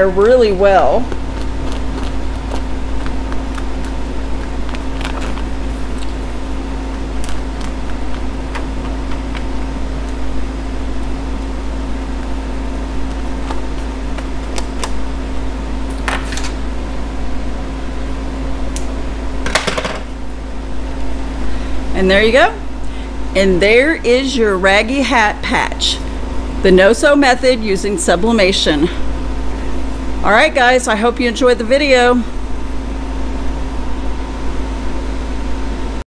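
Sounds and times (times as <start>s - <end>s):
machine humming: 0.0s - 36.0s.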